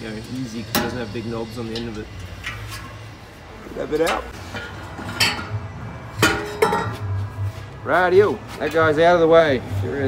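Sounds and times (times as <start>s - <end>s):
metal exhaust pipes clinking: 0.0s - 7.6s.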